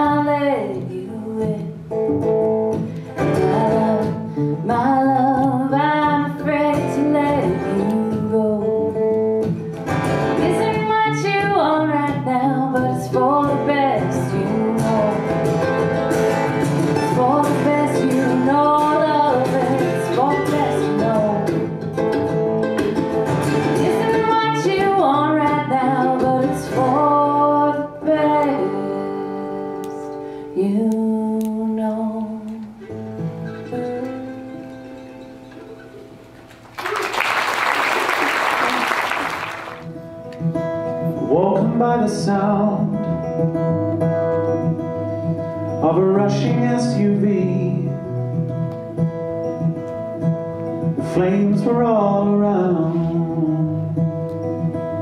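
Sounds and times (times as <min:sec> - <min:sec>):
acoustic band playing: 0:00.0 - 0:55.0
mandolin melody: 0:00.6 - 0:29.5, 0:32.8 - 0:36.6.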